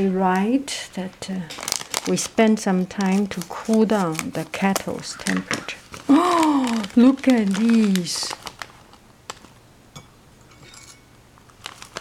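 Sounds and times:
tea leaves and bag rustling: 0:00.9 - 0:09.6, 0:11.5 - 0:12.0.

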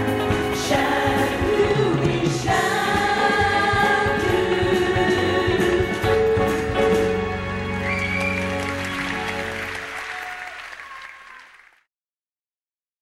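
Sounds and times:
women singing with accompaniment: 0:00.2 - 0:06.6
audience applause: 0:07.7 - 0:11.9.

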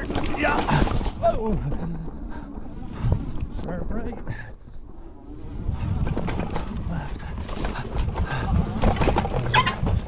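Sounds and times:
bike rattling and knocking: 0:00.0 - 0:01.5, 0:05.8 - 0:10.0
bike tyres rumbling on dirt: 0:00.0 - 0:01.5, 0:05.5 - 0:10.0.

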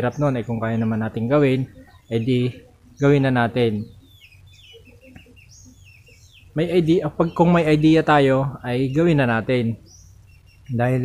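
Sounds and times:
faint low bird calls: 0:00.0 - 0:11.0
high bird chirps: 0:00.0 - 0:11.0.

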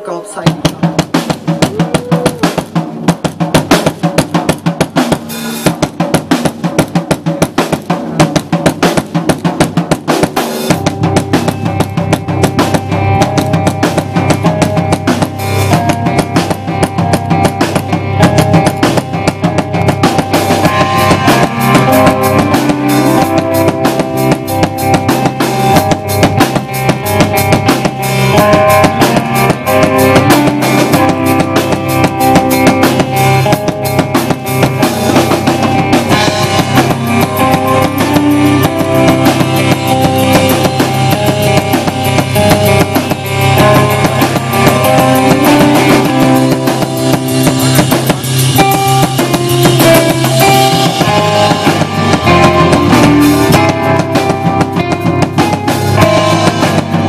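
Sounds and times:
drum kit playing: 0:00.0 - 0:57.0
rock band playing loudly: 0:00.0 - 0:57.0.

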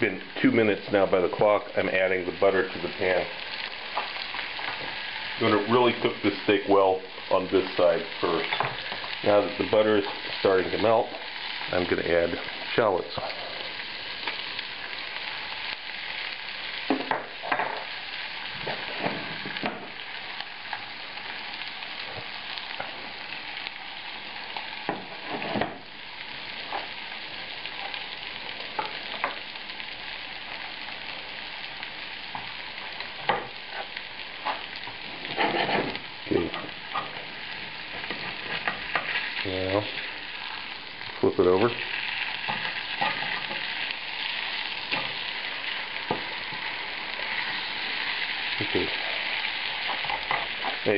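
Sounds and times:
steak sizzling in a frying pan: 0:00.0 - 0:50.9.

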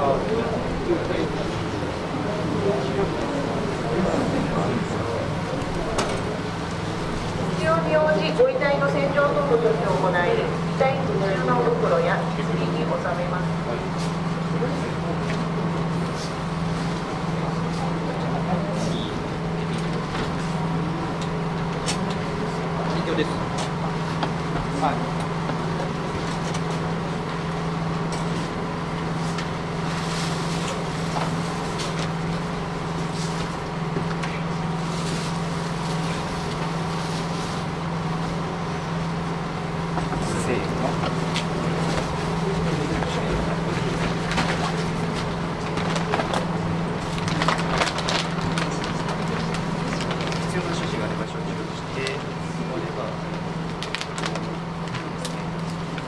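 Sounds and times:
murmured voices: 0:00.0 - 0:23.6
steady low hum: 0:00.0 - 0:56.0
plastic sheeting rustling: 0:29.1 - 0:39.1, 0:40.9 - 0:51.2, 0:53.2 - 0:56.0.

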